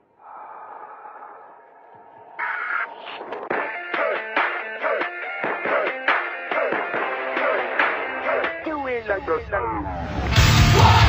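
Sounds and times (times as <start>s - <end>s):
punk rock band with electric guitar: 3.4s - 8.7s, 10.1s - 11.0s.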